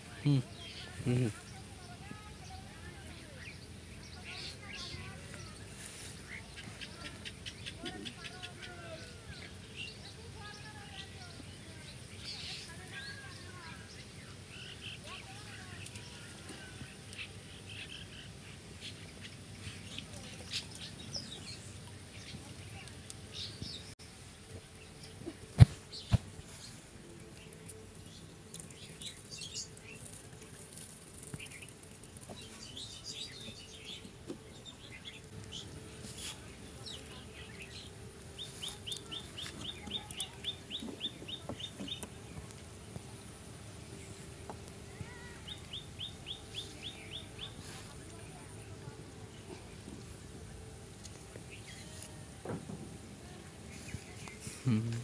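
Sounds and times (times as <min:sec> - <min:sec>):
steady low background hum: 0:00.0 - 0:55.0.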